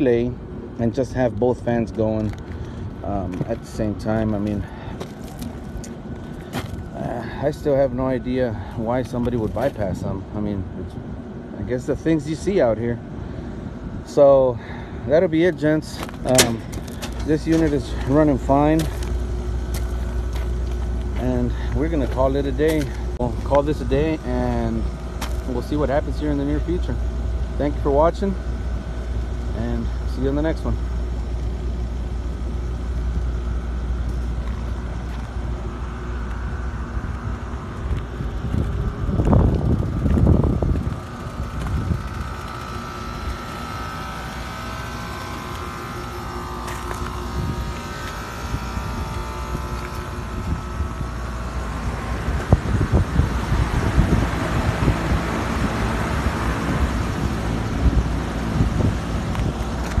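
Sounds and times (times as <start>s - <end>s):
air conditioner humming: 0.0s - 60.0s.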